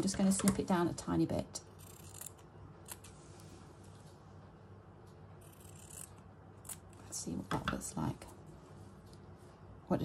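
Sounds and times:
scissors snipping fabric: 1.8 - 3.1, 5.4 - 7.0.

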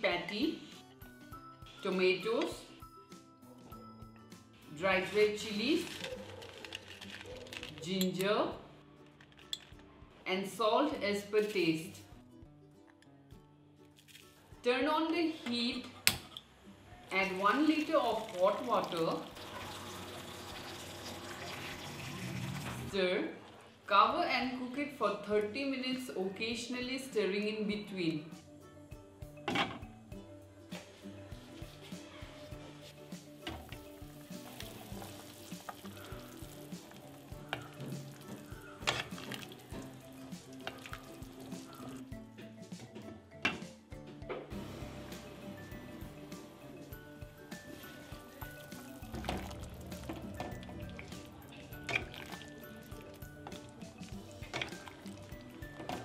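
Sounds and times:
soft background music: 0.0 - 56.0.

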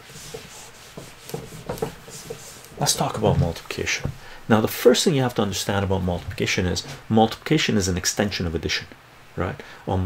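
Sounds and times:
eraser wiping whiteboard: 0.0 - 3.6.

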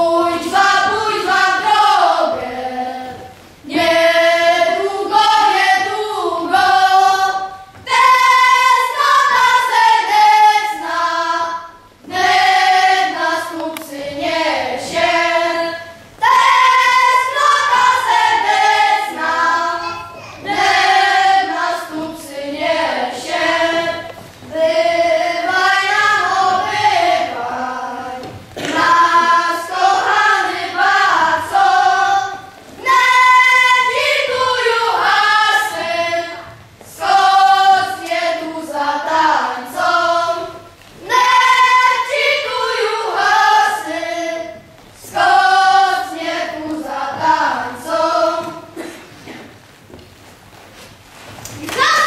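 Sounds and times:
children singing together: 0.0 - 49.6, 51.5 - 52.0.

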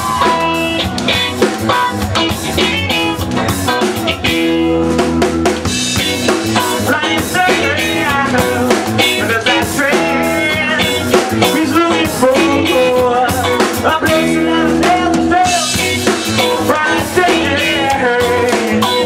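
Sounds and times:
electric guitar: 0.0 - 19.0
live rock band: 0.0 - 19.0.

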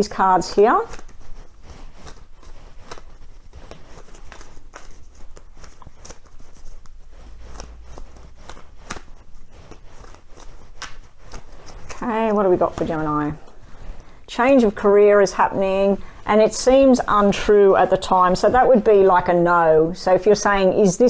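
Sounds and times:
cards being shuffled: 0.4 - 14.0.

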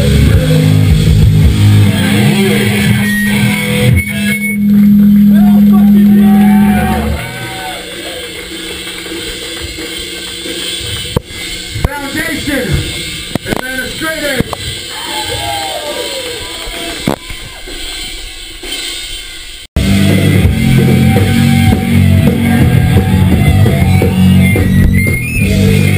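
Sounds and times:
live punk band playing: 0.0 - 18.1, 19.8 - 25.9
crowd voices and shouts: 0.0 - 18.8, 19.8 - 25.9.

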